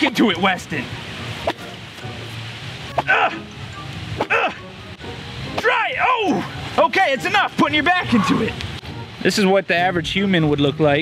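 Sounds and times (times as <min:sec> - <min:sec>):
background music: 0:00.0 - 0:10.2.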